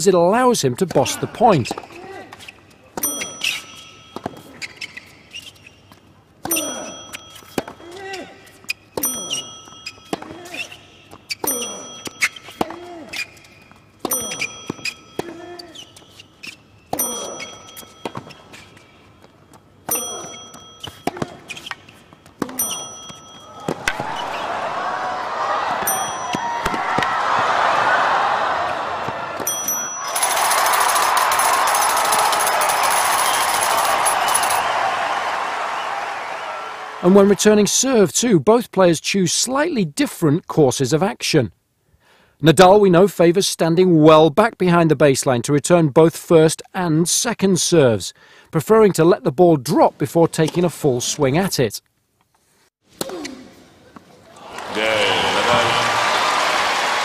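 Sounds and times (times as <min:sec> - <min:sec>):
racket striking tennis ball: 0:19.8 - 0:24.4
crowd cheering and applauding: 0:23.6 - 0:37.3, 0:54.4 - 0:57.0
player grunting: 0:54.4 - 0:56.0.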